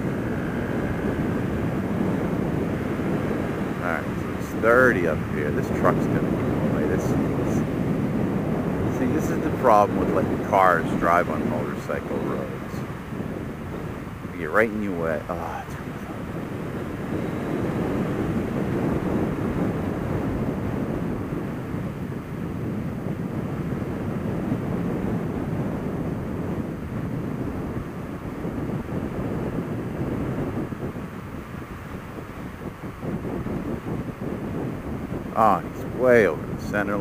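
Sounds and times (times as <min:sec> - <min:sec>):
road noise: 0:00.0 - 0:37.0
wind rushing over microphone: 0:00.0 - 0:37.0.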